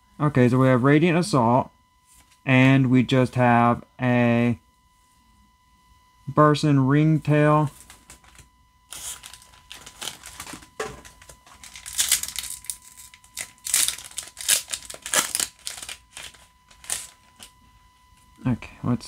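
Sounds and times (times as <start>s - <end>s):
foil wrapper crinkling and tearing: 7.8s - 17.5s.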